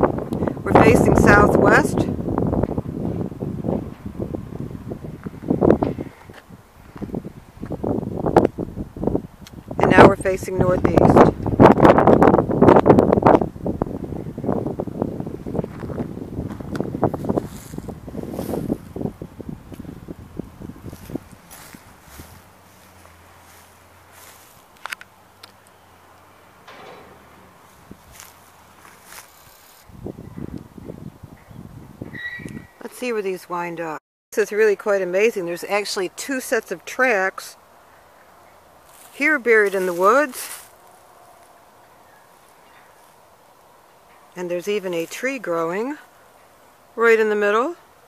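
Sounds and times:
footsteps through long grass: 15.5 - 25.7, 27.3 - 30.1, 38.8 - 43.4
rustling and handling noise: 15.6 - 19.0, 20.8 - 25.7, 26.6 - 29.9, 38.8 - 41.7.

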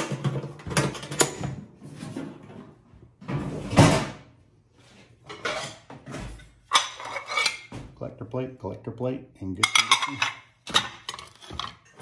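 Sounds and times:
plates clinking together: 6.7 - 7.7, 9.6 - 12.0
man talking: 8.0 - 10.4.

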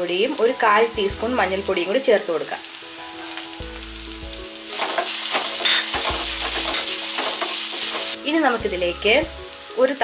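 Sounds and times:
onions sizzling in oil: 0.0 - 10.0.

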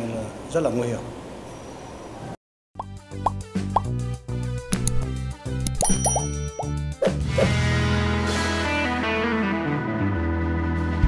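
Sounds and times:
jingle music with bass line: 4.8 - 7.9.

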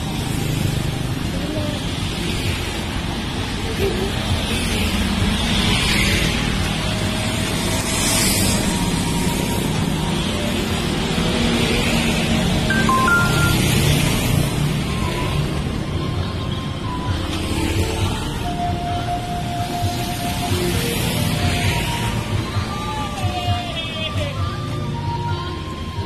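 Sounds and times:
motorcycles and cars passing: 0.0 - 25.0
music playing: 12.7 - 14.0.

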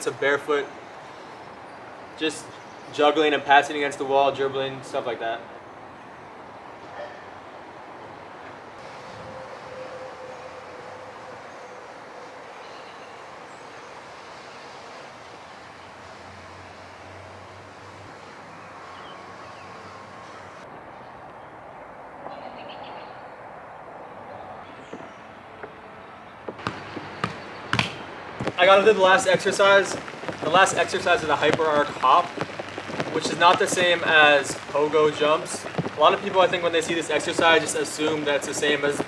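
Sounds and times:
outdoor rushing hiss: 8.8 - 20.7, 26.6 - 39.0
football being kicked: 26.5 - 28.6.

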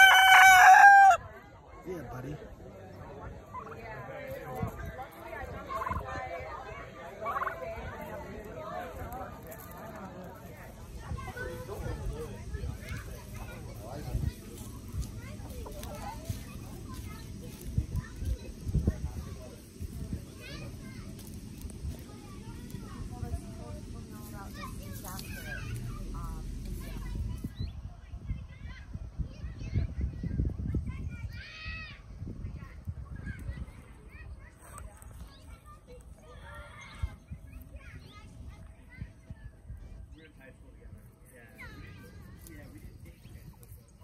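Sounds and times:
rooster crowing: 0.0 - 1.3
children playing: 0.0 - 44.0
low rumble: 20.9 - 30.0.

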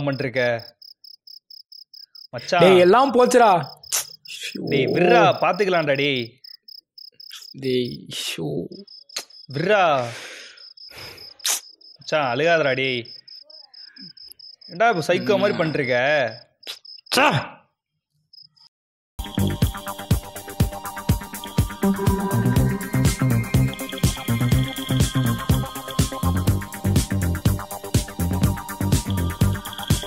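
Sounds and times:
cricket chirping: 0.0 - 17.2, 18.3 - 18.7, 27.6 - 30.0
man wailing and sobbing: 2.6 - 3.0, 4.6 - 5.5, 15.1 - 15.8.

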